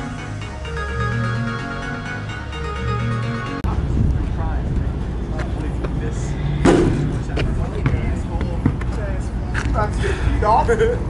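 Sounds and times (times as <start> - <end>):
steady low rumble: 2.8 - 11.0
basketball bouncing on asphalt: 6.7 - 9.1.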